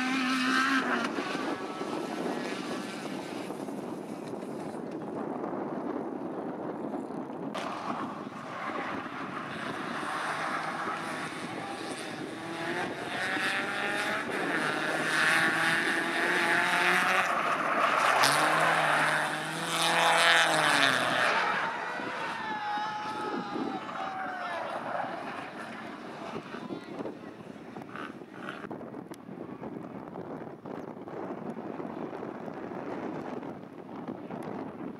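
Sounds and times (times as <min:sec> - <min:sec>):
race car engines revving past: 0:00.0 - 0:04.2, 0:07.6 - 0:28.7.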